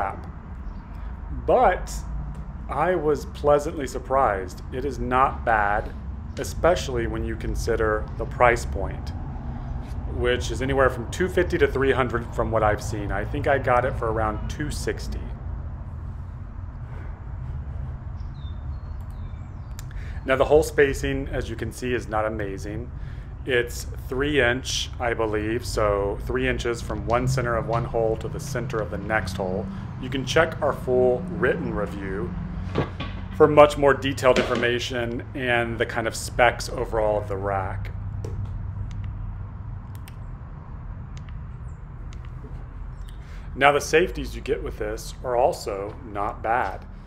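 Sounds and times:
low outdoor rumble: 0:00.0 - 0:47.0
faint clicks: 0:39.9 - 0:40.2, 0:41.1 - 0:41.5.

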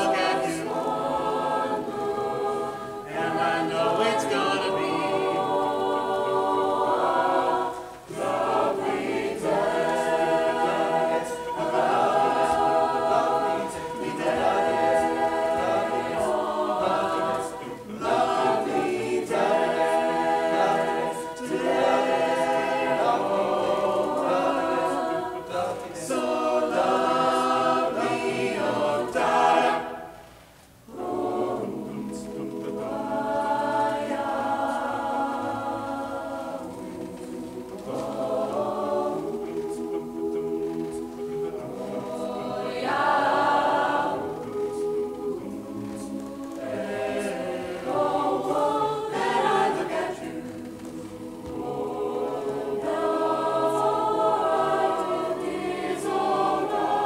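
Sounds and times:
mixed choir singing: 0:00.0 - 0:57.0.

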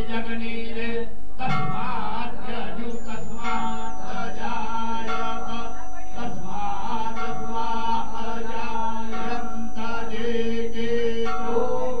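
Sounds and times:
devotional chanting: 0:00.0 - 0:12.0.

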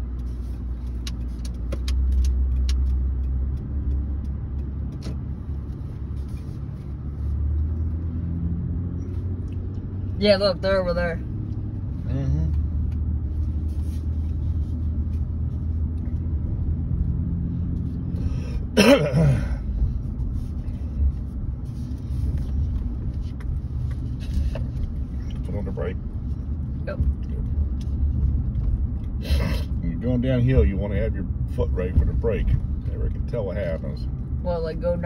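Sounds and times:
truck engine and road rumble: 0:00.0 - 0:35.0.

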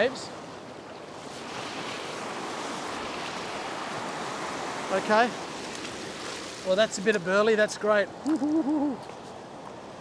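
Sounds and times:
surf washing over rocks: 0:00.0 - 0:10.0.

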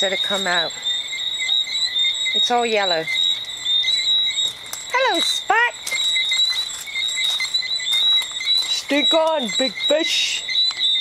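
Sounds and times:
high-pitched chirping chorus: 0:00.0 - 0:11.0.

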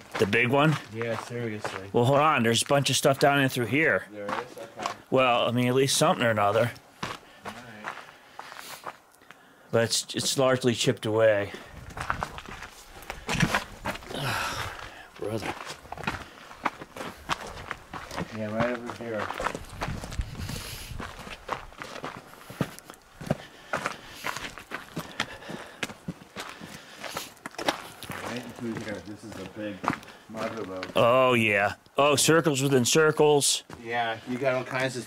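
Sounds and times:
footsteps on gravel: 0:00.0 - 0:09.4, 0:11.4 - 0:31.2, 0:33.6 - 0:35.0.

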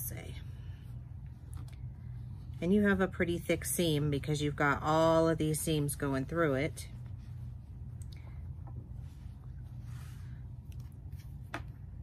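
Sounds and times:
steady low hum: 0:00.0 - 0:12.0
fabric rustling: 0:04.9 - 0:12.0.

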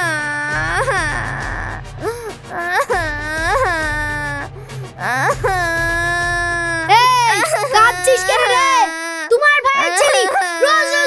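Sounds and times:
child wailing: 0:00.0 - 0:11.0.

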